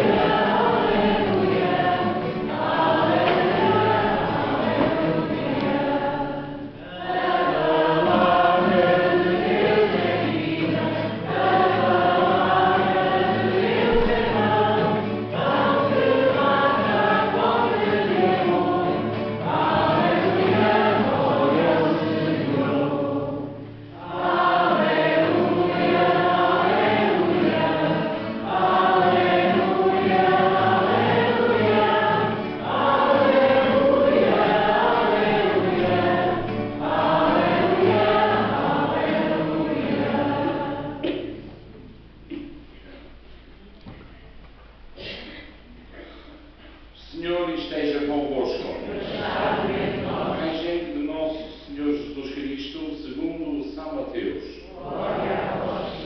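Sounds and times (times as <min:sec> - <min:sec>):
church choir singing: 0:00.0 - 0:41.8, 0:47.2 - 0:56.0.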